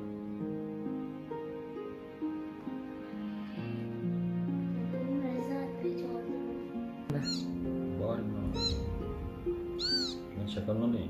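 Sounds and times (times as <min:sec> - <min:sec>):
background music: 0:00.0 - 0:11.0
kitten mewing: 0:09.8 - 0:10.2.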